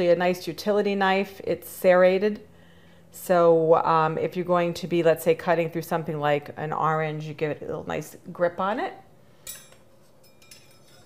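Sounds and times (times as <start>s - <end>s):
knife blades clinking: 9.4s - 11.0s.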